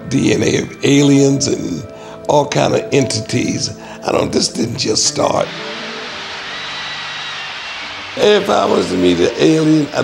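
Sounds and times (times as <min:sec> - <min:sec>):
faint high whine: 0:05.3 - 0:10.0
jet-like rushing noise: 0:05.4 - 0:09.4.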